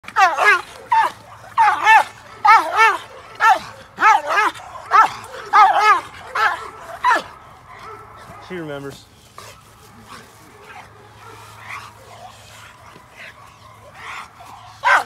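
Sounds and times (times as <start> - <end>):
dog barking rapidly: 0.0 - 8.6, 9.6 - 15.0.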